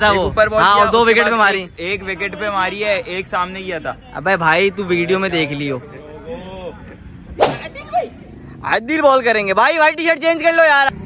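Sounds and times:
sharp smack: 7.4 - 7.7.

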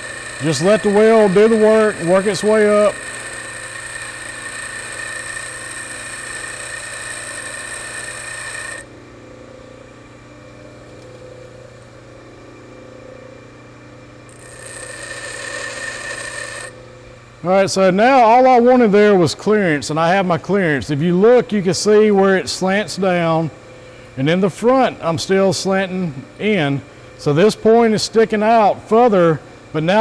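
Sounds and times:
tool bit grinding hiss: 0.0 - 8.9, 14.3 - 16.8
bench grinder motor hum: 0.0 - 9.6, 14.2 - 17.2.

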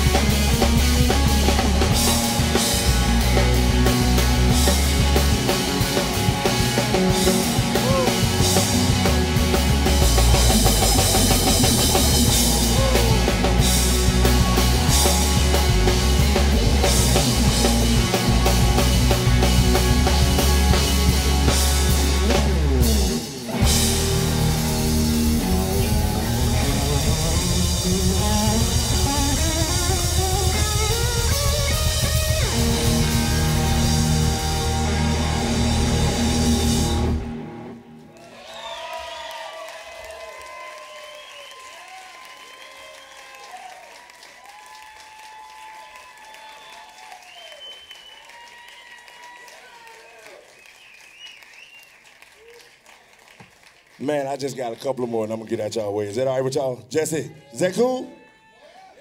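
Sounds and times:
live rock band playing: 0.0 - 38.1
audience applause and cheering: 0.0 - 55.6.

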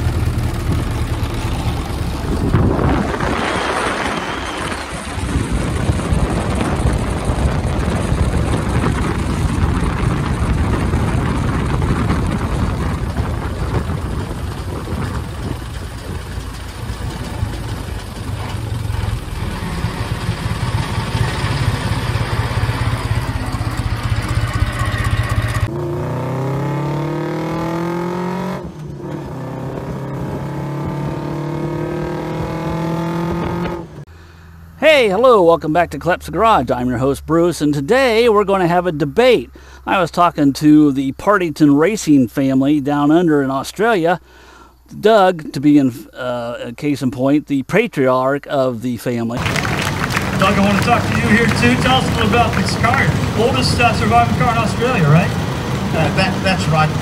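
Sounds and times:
car engine running: 0.0 - 29.0, 49.4 - 57.0
wind and tyre noise: 0.0 - 35.0, 49.3 - 57.0.

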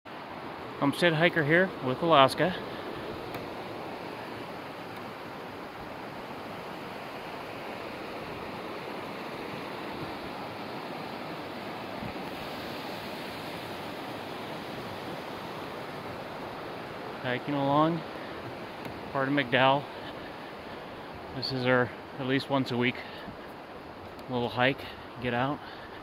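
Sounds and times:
creek water rushing: 0.1 - 26.0.

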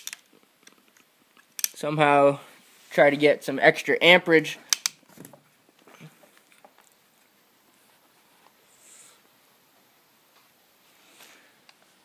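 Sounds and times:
soft hiss: 0.0 - 12.0.

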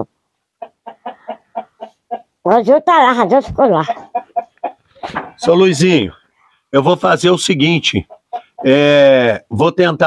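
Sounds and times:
hen clucking: 0.0 - 2.7, 3.3 - 6.1, 7.7 - 9.0.

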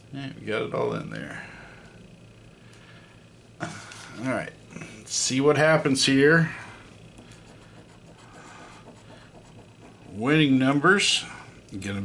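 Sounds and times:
low steady hum: 0.0 - 12.0
coin scratching a ticket: 7.2 - 10.6.

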